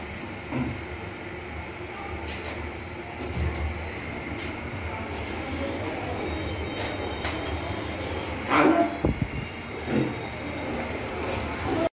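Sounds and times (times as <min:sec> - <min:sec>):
electric fan humming: 0:00.0 - 0:11.9.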